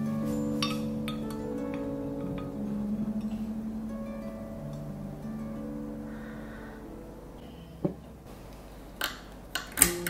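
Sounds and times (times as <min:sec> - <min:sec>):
soft plucked music: 0:00.0 - 0:08.6.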